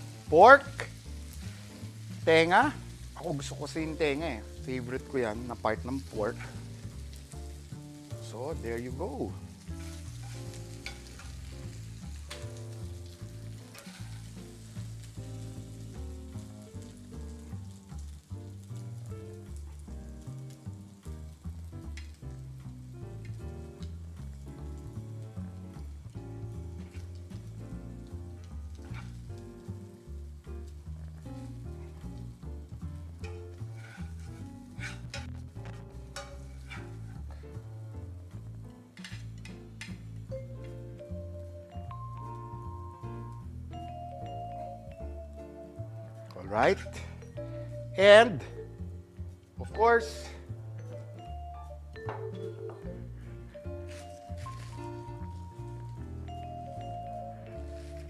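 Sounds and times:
noodles sizzling in a skillet: 0.0s - 48.6s, 49.2s - 58.0s
metal tongs clicking against pan: 10.2s - 11.6s, 13.7s - 14.2s, 36.1s - 36.8s.

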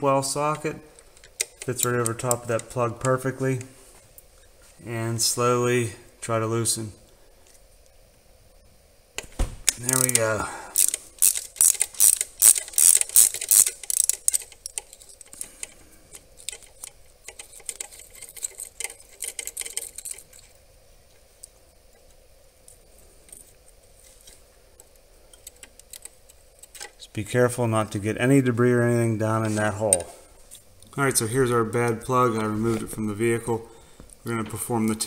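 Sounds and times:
socket ratchet clicking: 1.0s - 3.2s, 9.7s - 20.5s.

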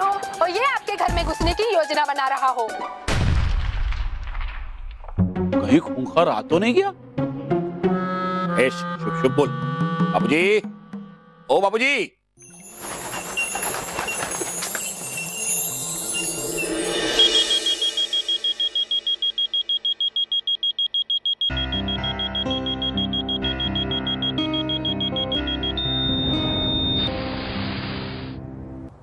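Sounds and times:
steady high tone: 12.4s - 28.4s
shimmering sound swell: 14.6s - 18.8s
rapid high electronic beeping: 16.1s - 27.2s
background music with bass: 21.5s - 28.9s.

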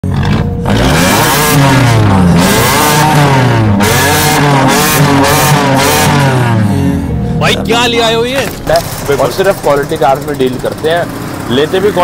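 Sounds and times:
car engine revving: 0.0s - 12.0s.

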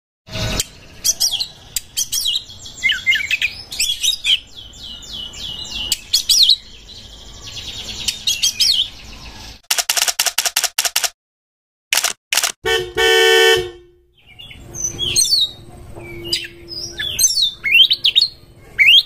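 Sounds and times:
bird singing whistles and trills: 1.0s - 9.0s, 14.2s - 19.0s.

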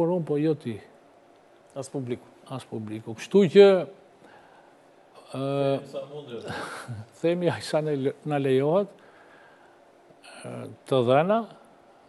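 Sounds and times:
man speaking: 0.0s - 0.9s, 1.8s - 4.0s, 5.2s - 9.0s, 10.3s - 11.6s
quick intake of breath: 4.2s - 4.8s, 9.0s - 9.9s.

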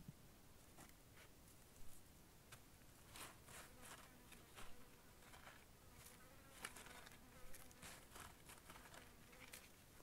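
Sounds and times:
dry dirt rustling in basket: 0.8s - 10.0s
flying insect buzzing: 3.1s - 9.8s.

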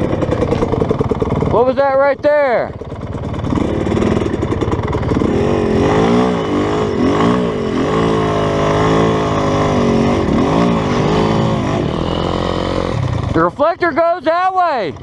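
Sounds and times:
dirt bike engine revving: 0.0s - 15.0s.

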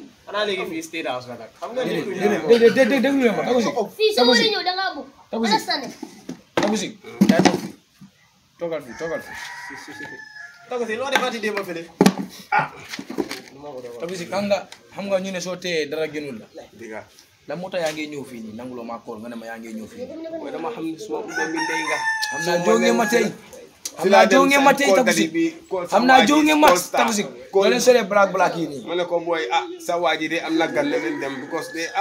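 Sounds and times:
people talking: 0.0s - 6.0s, 6.6s - 7.7s, 8.6s - 32.0s
rooster crowing: 8.7s - 11.5s, 21.2s - 23.6s, 30.3s - 32.0s.

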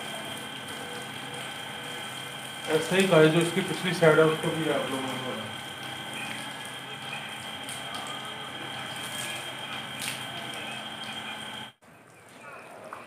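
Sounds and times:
hose water spraying on carpet: 0.0s - 5.6s.

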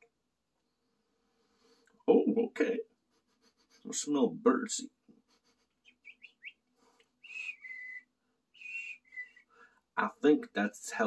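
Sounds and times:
man whistling birdsong: 5.8s - 9.7s.

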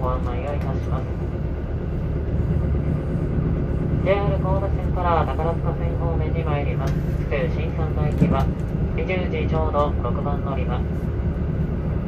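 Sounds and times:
train wheels on rails: 0.0s - 10.8s
diesel engine rumble: 0.0s - 12.0s.

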